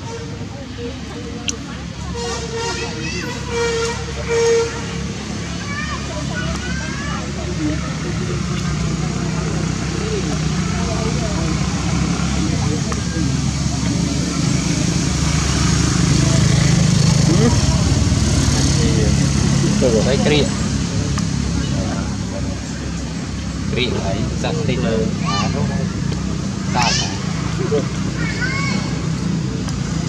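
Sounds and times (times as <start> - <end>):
vehicle engine humming: 0.0 - 30.0.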